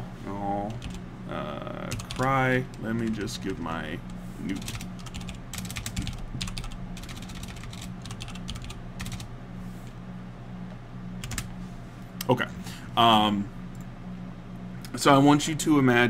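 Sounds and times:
steady low hum: 0.0s - 16.0s
computer keyboard typing: 0.6s - 1.0s, 1.9s - 3.7s, 4.5s - 9.3s, 11.2s - 11.5s.

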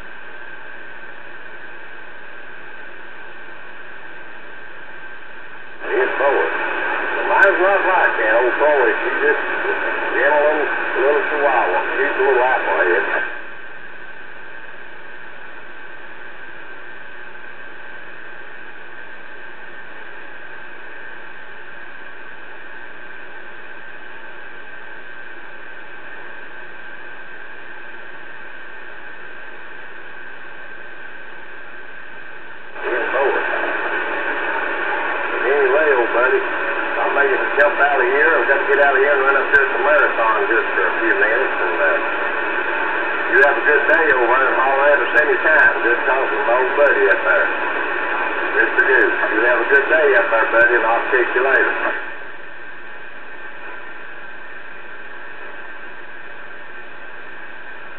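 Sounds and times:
radio static hiss: 0.0s - 57.9s
man talking over radio: 5.8s - 13.4s, 32.8s - 42.4s, 43.2s - 52.2s.

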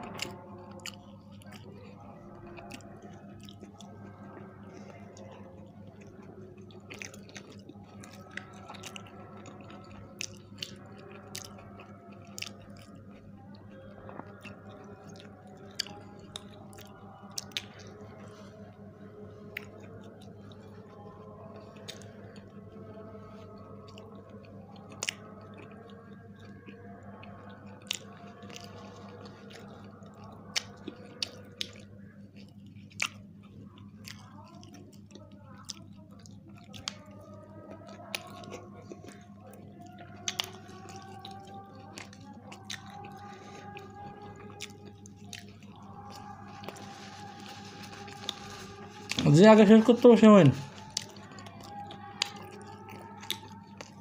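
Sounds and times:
people chewing pizza: 0.0s - 54.0s.

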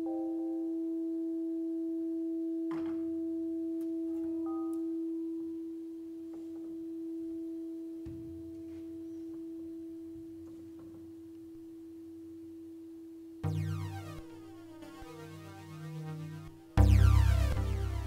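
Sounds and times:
steady pure sustained tone: 13.4s - 18.0s.

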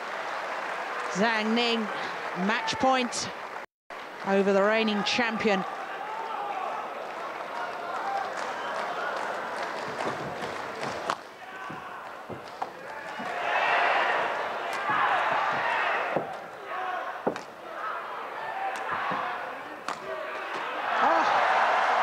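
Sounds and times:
murmuring arena crowd: 5.0s - 22.0s
racket hitting shuttlecock: 18.7s - 20.6s.

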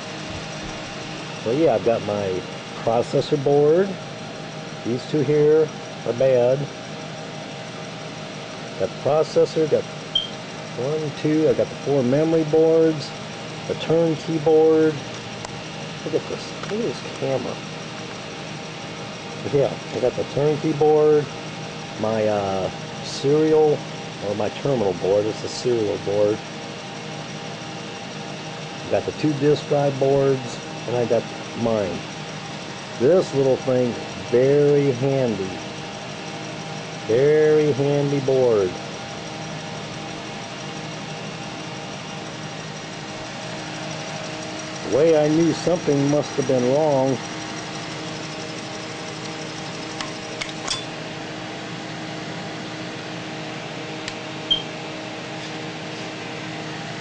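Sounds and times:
computer cooling fan whirring: 0.0s - 57.0s.

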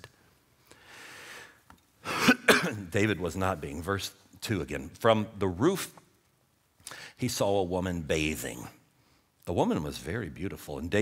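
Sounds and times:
man clearing his throat: 2.1s - 2.8s.

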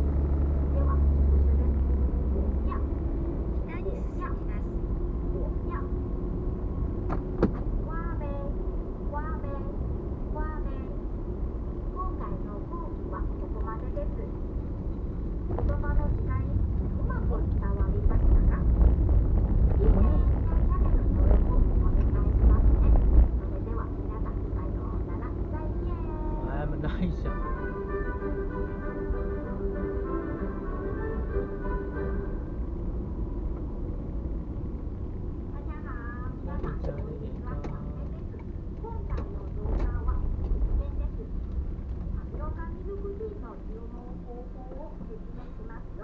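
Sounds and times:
car engine and tyres rumbling: 0.0s - 46.0s.

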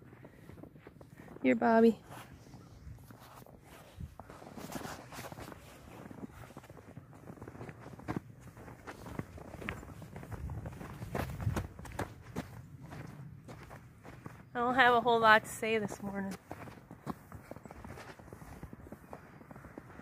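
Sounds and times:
footsteps in wet snow: 0.0s - 20.0s.

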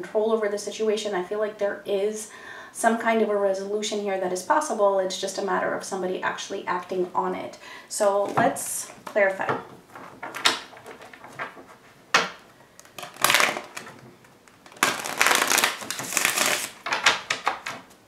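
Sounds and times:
cards being shuffled: 12.8s - 17.9s.

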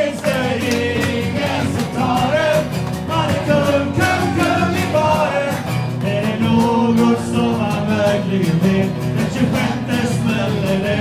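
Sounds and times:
man singing: 0.0s - 11.0s
strummed guitar: 0.0s - 11.0s.

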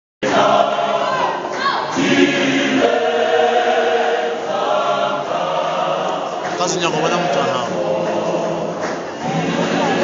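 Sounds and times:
gospel choir singing: 0.2s - 10.0s.

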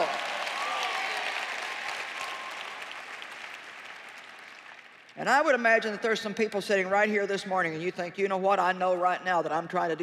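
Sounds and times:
arena audience applause: 0.0s - 5.2s.

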